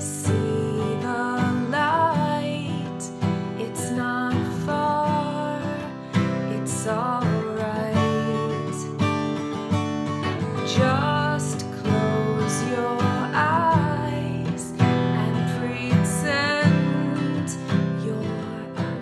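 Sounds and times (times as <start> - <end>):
woman singing: 0.0 - 9.4, 10.1 - 19.0
acoustic guitar strumming: 0.0 - 19.0.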